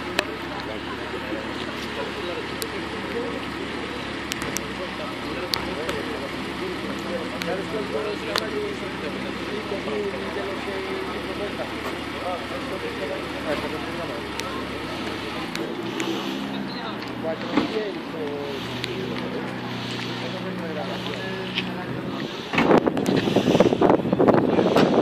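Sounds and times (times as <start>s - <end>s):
car engines running: 0.0s - 25.0s
crowd chatter: 0.0s - 25.0s
deep rumble: 12.4s - 25.0s.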